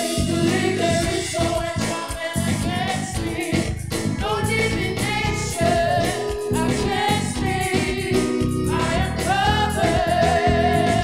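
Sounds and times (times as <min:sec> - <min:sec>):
electronic keyboard accompaniment: 0:00.0 - 0:11.0
singers singing in harmony: 0:00.0 - 0:11.0.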